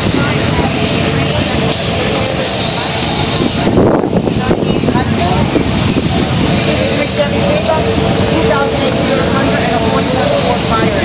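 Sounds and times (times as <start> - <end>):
motorcycle engines running: 0.0 - 11.0
people talking: 0.0 - 11.0.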